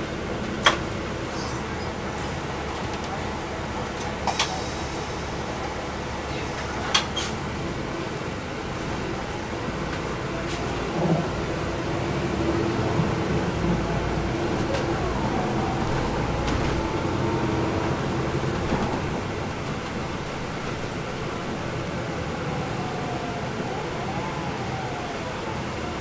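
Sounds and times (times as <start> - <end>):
bus diesel engine: 0.0 - 26.0
road noise: 0.0 - 26.0.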